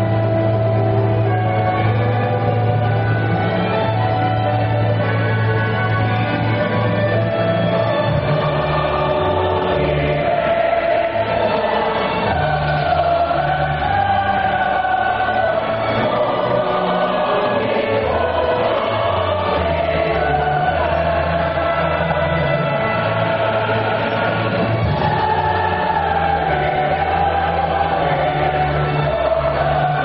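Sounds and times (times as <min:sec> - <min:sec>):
choir singing held notes: 0:00.0 - 0:30.0.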